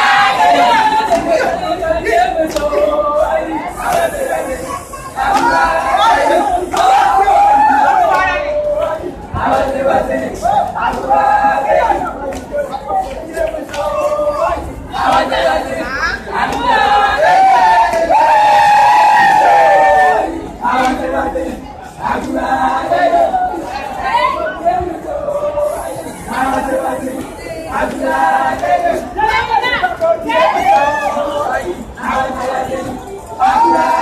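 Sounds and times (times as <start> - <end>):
crowd chatter in hall: 0.0 - 34.0.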